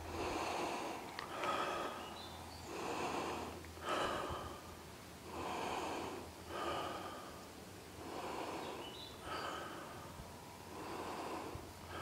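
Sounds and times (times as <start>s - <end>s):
person breathing hard: 0.0s - 12.0s.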